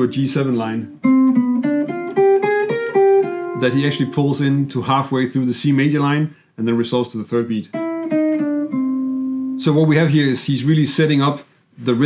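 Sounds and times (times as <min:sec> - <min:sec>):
jazz electric guitar line: 0:00.0 - 0:04.7, 0:07.7 - 0:09.6.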